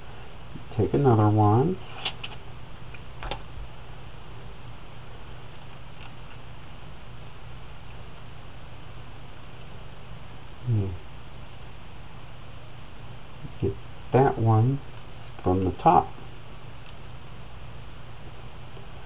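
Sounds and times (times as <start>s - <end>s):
low hum and hiss: 0.0s - 19.0s
man humming: 10.6s - 11.0s.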